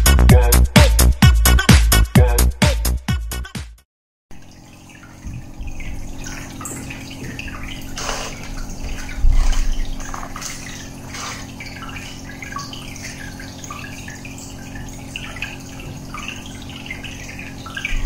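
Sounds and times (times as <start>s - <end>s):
aquarium bubbles gurgling: 4.3s - 18.0s
steady low hum: 4.4s - 18.0s.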